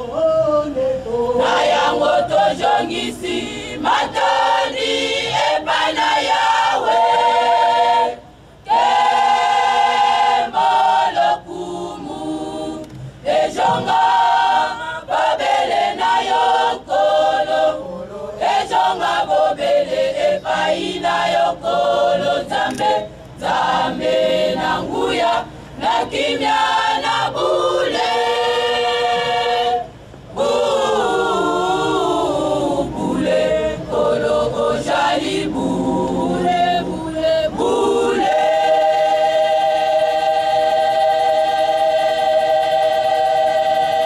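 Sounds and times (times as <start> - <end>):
women's choir singing: 0.0 - 44.0.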